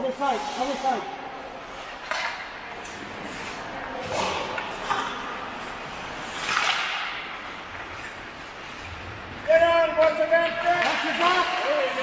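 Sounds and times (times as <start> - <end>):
skate blades scraping ice: 0.0 - 9.3.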